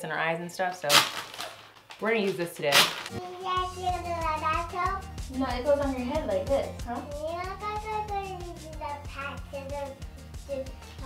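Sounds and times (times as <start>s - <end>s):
background music with steady beat: 3.1s - 11.0s
toddler asking in sing-song voice: 3.2s - 5.1s, 7.0s - 10.9s.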